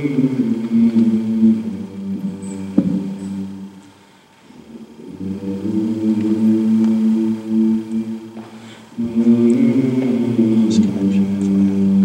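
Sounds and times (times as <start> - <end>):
vocal group singing chord: 0.0 - 12.0.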